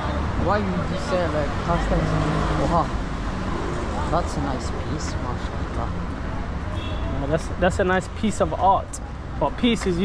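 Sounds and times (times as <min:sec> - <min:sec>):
street traffic rumble: 0:00.0 - 0:10.0
man's voice: 0:00.3 - 0:03.0.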